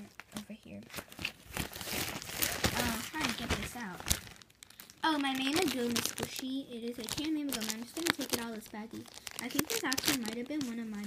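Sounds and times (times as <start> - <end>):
plastic bag crinkling: 0.0 - 11.0
child's voice: 2.7 - 4.1, 5.0 - 11.0.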